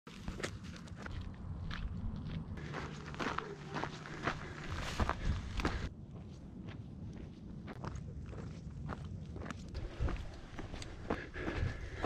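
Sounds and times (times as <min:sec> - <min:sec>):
footsteps on gravelly trail: 0:00.1 - 0:12.0
steady low rumble: 0:00.8 - 0:12.0.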